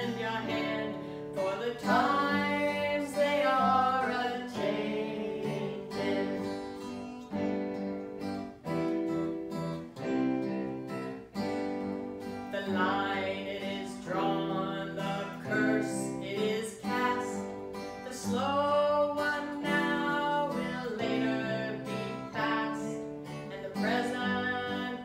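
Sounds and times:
woman singing: 0.0s - 7.0s, 12.4s - 25.0s
acoustic guitar strumming: 0.0s - 25.0s.

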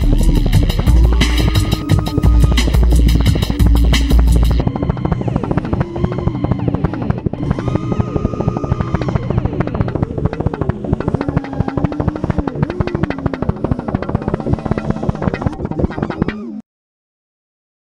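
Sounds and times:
electronic music with heavy bass: 0.0s - 16.6s
quadcopter motors whining: 4.5s - 15.5s.

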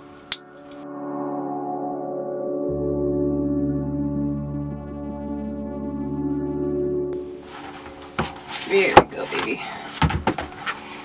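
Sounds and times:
soft ambient music: 0.0s - 9.8s.

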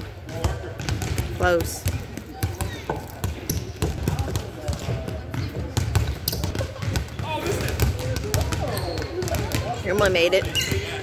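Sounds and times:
basketballs bouncing on wooden floor: 0.0s - 11.0s.

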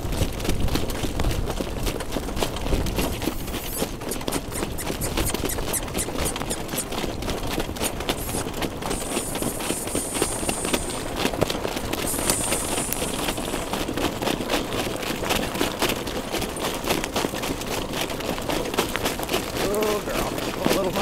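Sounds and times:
wind buffeting microphone: 0.0s - 17.6s
cart rattling: 0.0s - 21.0s
hoofbeats clattering: 0.0s - 21.0s.

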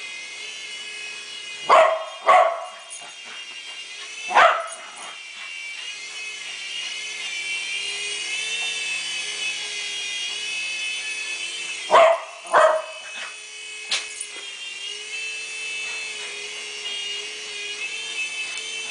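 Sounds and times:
toy helicopter whine: 0.0s - 18.9s
dog barking: 1.7s - 2.8s, 4.3s - 4.8s, 11.9s - 13.1s.

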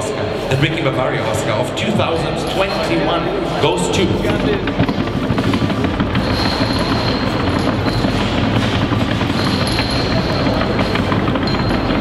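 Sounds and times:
drumroll: 0.4s - 12.0s.

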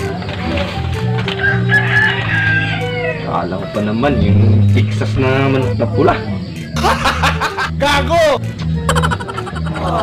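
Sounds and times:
background music: 0.0s - 10.0s
rooster crowing: 1.3s - 3.5s.

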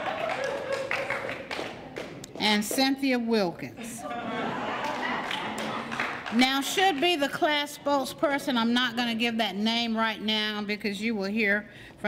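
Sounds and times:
scattered handclaps: 0.0s - 2.4s, 4.8s - 6.4s.

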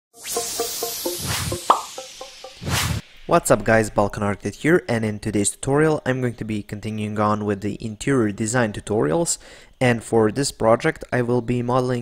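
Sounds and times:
short plucked notes: 0.1s - 3.3s
rising airy whoosh: 0.2s - 3.7s.

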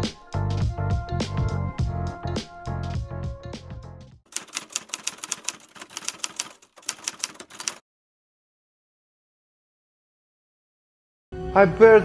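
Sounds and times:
typewriter key clacks: 4.3s - 7.8s.

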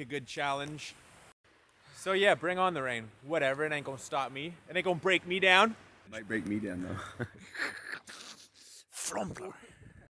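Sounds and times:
man's breathy chuckle: 7.0s - 8.5s.

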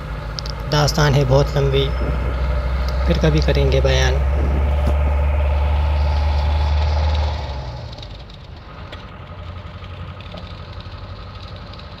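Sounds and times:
loud low drone: 0.0s - 8.2s
vehicle engine running: 0.0s - 12.0s.

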